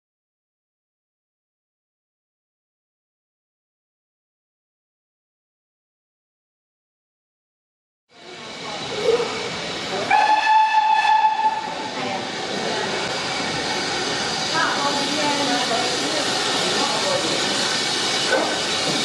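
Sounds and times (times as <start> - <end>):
steam hissing: 8.2 - 19.0
steam locomotive whistle: 10.0 - 11.8.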